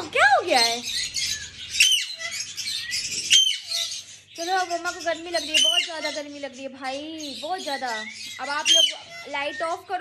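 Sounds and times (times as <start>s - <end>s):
parrots chattering: 0.0s - 10.0s
parrot squawks: 0.6s - 6.4s, 7.6s - 9.8s.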